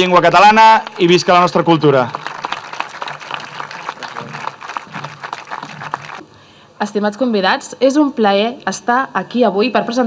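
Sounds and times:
audience applauding: 0.4 - 6.2.

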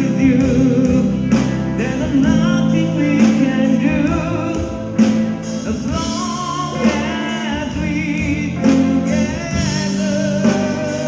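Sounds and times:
bass guitar: 0.0 - 11.0
drums: 0.0 - 11.0
electric guitars: 0.0 - 11.0
man singing: 0.0 - 11.0.

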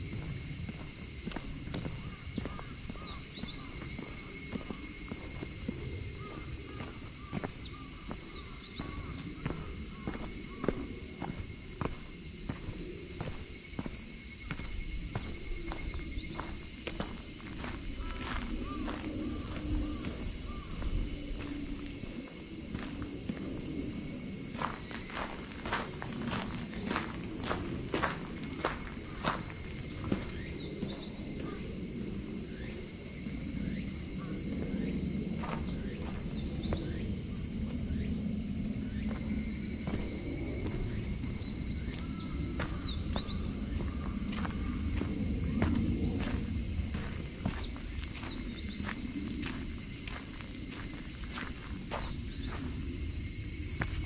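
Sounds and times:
footsteps on park path: 0.0 - 54.0
high-pitched insect chorus: 0.0 - 54.0.

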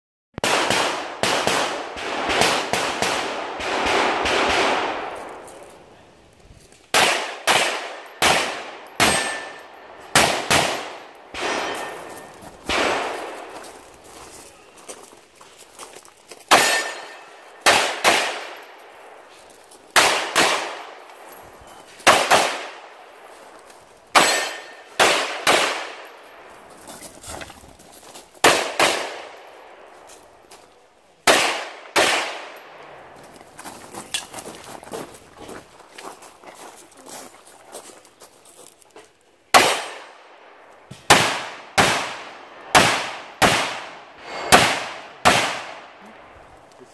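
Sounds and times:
pistol shots: 0.4 - 5.5, 6.9 - 13.8, 16.5 - 19.2, 19.9 - 21.2, 22.0 - 23.1, 24.1 - 26.3, 28.4 - 29.9, 31.2 - 32.9, 39.5 - 46.0.

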